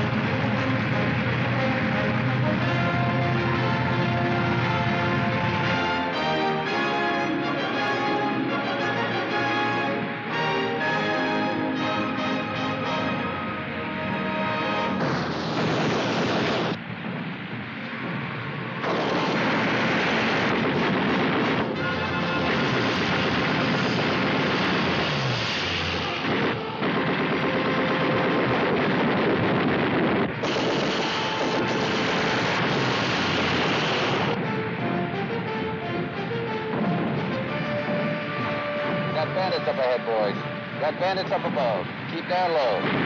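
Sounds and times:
orchestral music: 0.0 - 16.8, 18.9 - 28.7, 30.5 - 43.0
propeller aircraft engine: 0.0 - 43.0
explosions: 14.9 - 34.4, 39.1 - 43.0
anti-aircraft gunfire: 15.0 - 16.8, 18.8 - 34.4.

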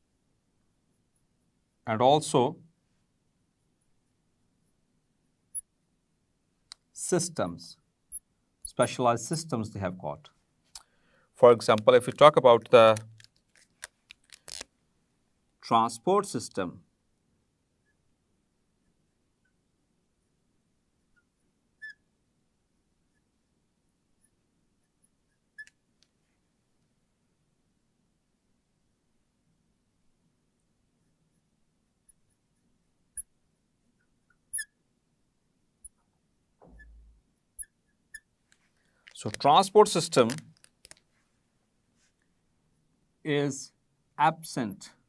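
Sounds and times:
marker squeaking on glass board: 21.2 - 22.1, 34.3 - 34.8, 36.7 - 38.3.

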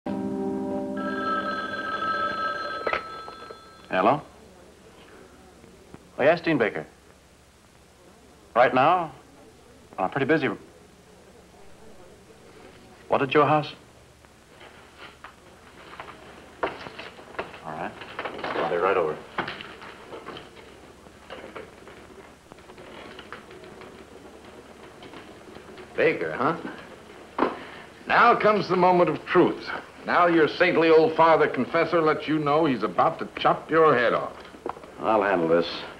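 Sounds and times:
held music chord: 0.1 - 1.5
telephone bell ringing: 0.8 - 4.2
papers being handled: 14.5 - 28.0.

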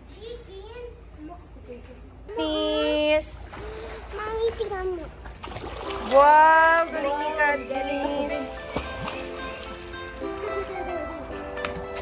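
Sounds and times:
pool water splashing: 2.3 - 12.0.

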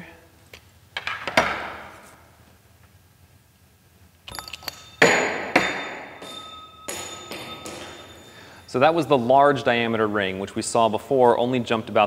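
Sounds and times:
metal ring clattering: 4.3 - 8.8
metallic impacts ringing: 4.3 - 9.6.

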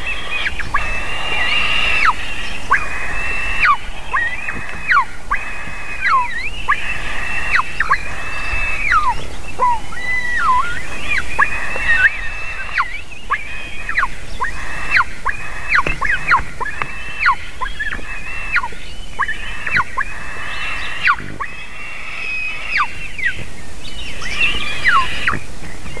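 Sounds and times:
eaglets shrill whistled calls: 0.0 - 26.0.

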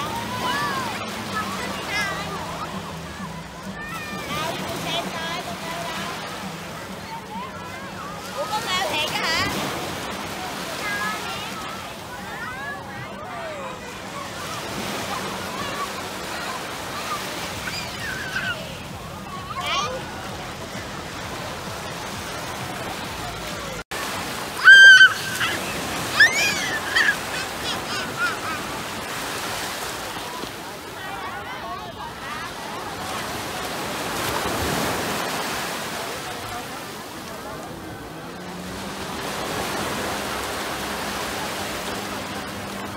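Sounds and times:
ocean surf washing: 0.0 - 42.9.

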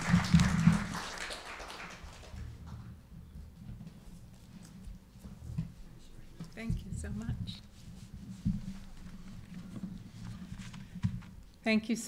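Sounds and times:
papers and hands on wooden lectern: 2.7 - 11.5.

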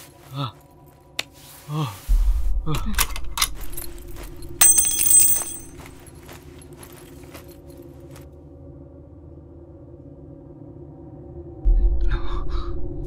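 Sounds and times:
bright metallic jingle: 4.6 - 6.0
quiet steady drone: 6.5 - 13.0.

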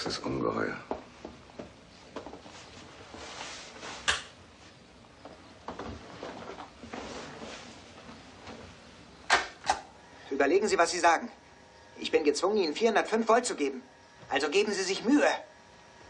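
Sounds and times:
rustling and shuffling: 0.8 - 9.2.

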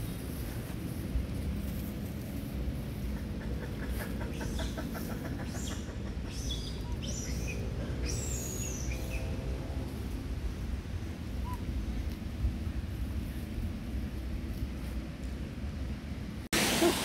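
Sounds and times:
steady low rumble: 0.0 - 17.0
bird clucking: 3.0 - 9.1.

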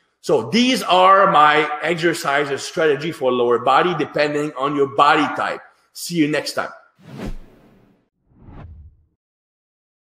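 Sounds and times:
whoosh transition effect: 7.0 - 9.1.

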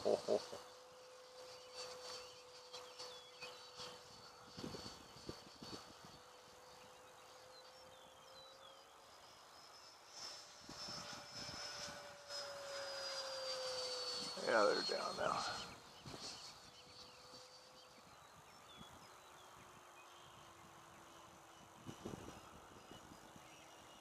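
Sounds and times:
model jet fan whine: 0.0 - 24.0.

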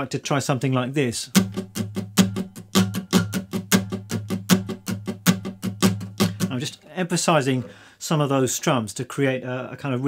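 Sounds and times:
acoustic guitar strumming: 1.3 - 6.7.

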